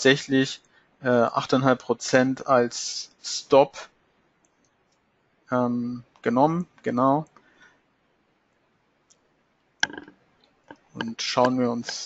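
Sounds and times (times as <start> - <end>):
computer mouse clicks: 9.8 - 10.1.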